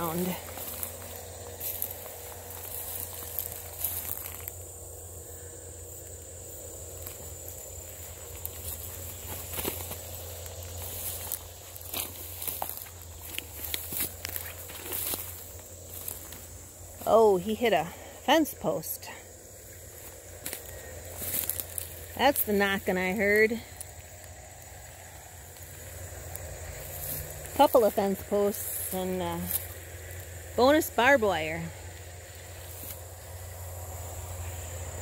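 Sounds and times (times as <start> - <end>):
footsteps crunching through dry grass: 0.0 - 18.1, 19.3 - 35.0
steady low hum: 0.0 - 35.0
stems crackling underfoot: 0.0 - 35.0.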